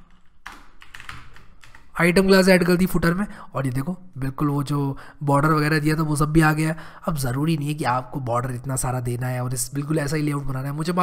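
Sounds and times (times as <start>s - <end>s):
computer keyboard typing: 0.0s - 2.0s.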